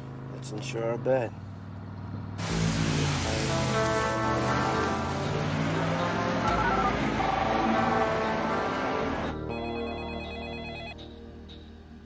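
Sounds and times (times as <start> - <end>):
background score music: 2.4 - 12.0
telephone ringing electronic trill: 9.5 - 11.0.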